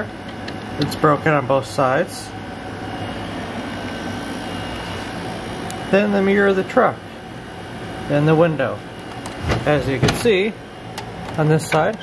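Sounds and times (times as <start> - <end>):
ventilation hum with faint tones: 0.0 - 12.0.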